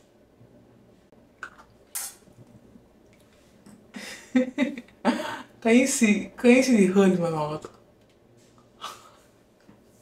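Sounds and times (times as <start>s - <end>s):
lip smack: 1.4s - 2.2s.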